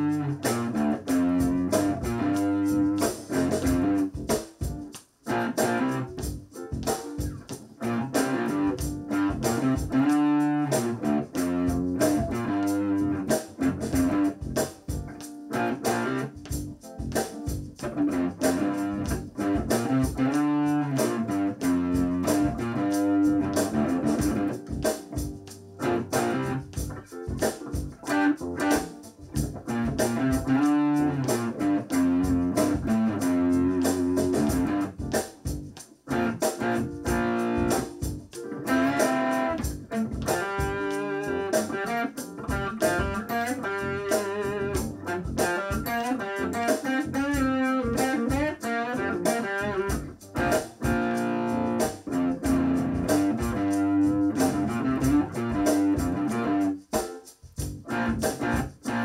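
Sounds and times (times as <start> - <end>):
electric guitar playing: 0.0 - 57.2, 57.8 - 59.0.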